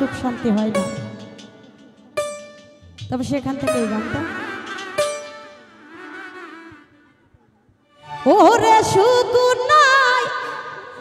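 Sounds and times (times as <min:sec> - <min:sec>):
folk ensemble instrumental music: 0:00.0 - 0:11.0.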